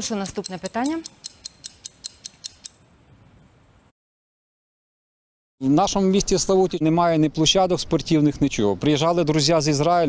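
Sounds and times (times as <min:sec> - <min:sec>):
rapid clock ticking: 0:00.0 - 0:02.8.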